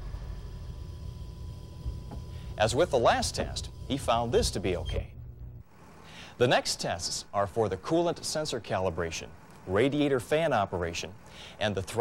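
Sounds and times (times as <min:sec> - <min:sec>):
faint hiss: 0:02.1 - 0:11.8.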